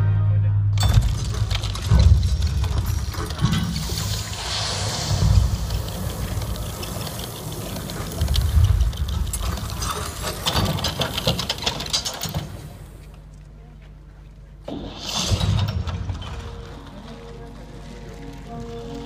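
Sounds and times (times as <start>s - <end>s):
deep booms: 0.7s - 9.9s
rushing hissing wash: 3.0s - 11.3s.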